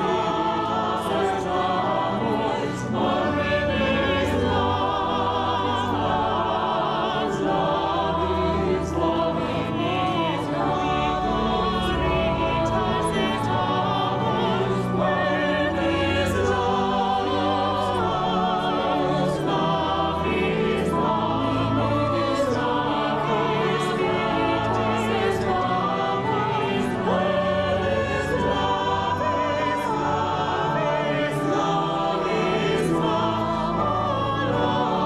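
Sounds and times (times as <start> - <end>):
mixed choir singing: 0.0 - 35.0
organ chords: 0.0 - 35.0.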